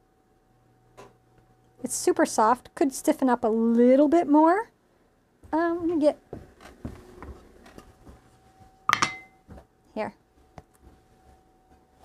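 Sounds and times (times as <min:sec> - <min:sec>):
objects knocking on table: 0:08.9 - 0:09.4
ringing clink: 0:08.9 - 0:09.4.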